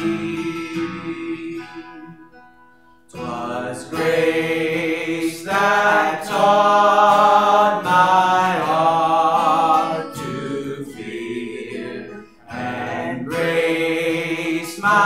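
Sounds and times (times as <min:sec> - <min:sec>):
man singing a hymn: 0:00.0 - 0:02.1, 0:03.1 - 0:15.0
acoustic guitar: 0:00.0 - 0:15.0.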